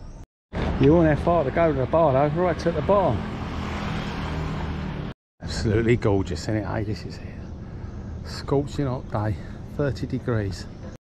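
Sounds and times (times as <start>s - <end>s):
outdoor background noise: 0.0s - 11.0s
engine humming: 0.6s - 11.0s.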